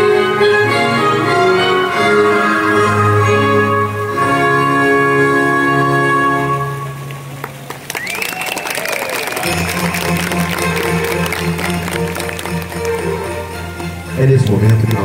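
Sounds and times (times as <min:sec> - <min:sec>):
baroque orchestral music: 0:00.0 - 0:07.7, 0:09.4 - 0:15.0
audience applause: 0:07.0 - 0:15.0.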